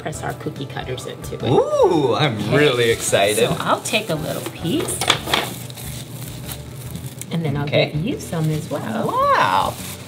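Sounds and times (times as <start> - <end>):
plastic wrap crinkling: 2.6 - 10.0.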